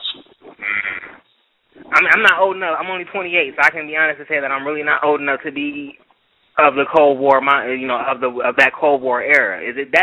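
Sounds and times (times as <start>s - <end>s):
person talking: 1.8s - 6.0s, 6.6s - 10.0s.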